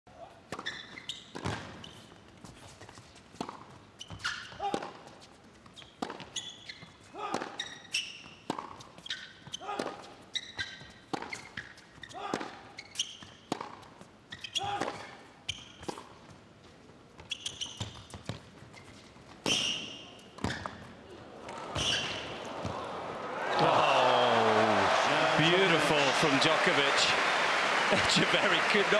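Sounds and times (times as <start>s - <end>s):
shoe squeaks on court: 0.6s - 3.0s, 4.0s - 4.7s, 5.6s - 7.0s, 7.6s - 13.5s, 14.3s - 16.1s, 17.2s - 20.9s, 21.8s - 22.2s
crowd cheering and applause: 21.6s - 28.9s.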